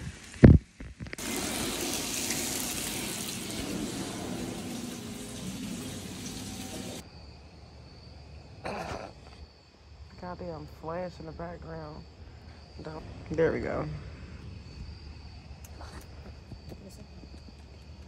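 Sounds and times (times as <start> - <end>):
tap running water into sink: 1.2 - 7.0.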